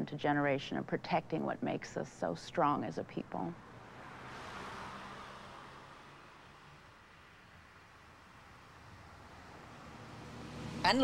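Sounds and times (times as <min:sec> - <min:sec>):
pickup truck driving away: 0:03.6 - 0:11.0.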